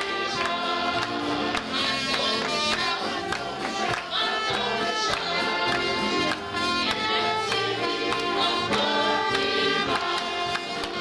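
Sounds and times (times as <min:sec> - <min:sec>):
choir singing gospel song: 0:00.0 - 0:11.0
instrumental backing with beat: 0:00.0 - 0:11.0.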